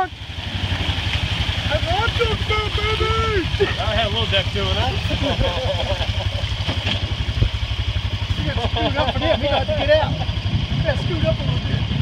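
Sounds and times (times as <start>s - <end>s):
engine idling: 0.0s - 12.0s
people laughing and talking: 1.8s - 6.8s, 8.2s - 11.6s.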